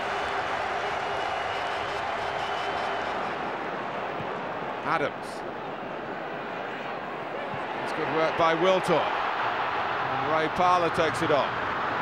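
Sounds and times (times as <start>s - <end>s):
large stadium crowd: 0.0s - 12.0s.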